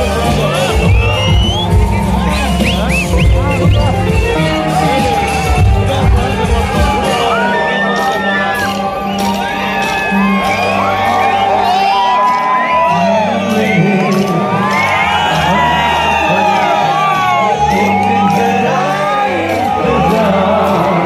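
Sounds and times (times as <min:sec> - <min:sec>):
crowd shouting and cheering: 0:00.0 - 0:21.0
live concert music: 0:00.0 - 0:21.0.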